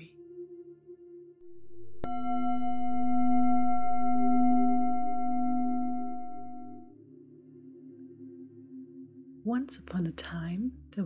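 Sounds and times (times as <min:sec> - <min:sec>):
singing bowl ringing: 0:01.5 - 0:06.9.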